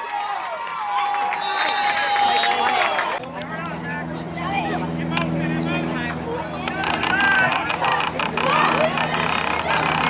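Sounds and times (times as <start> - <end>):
voices calling out: 0.8 - 10.0
low motor hum: 2.8 - 10.0.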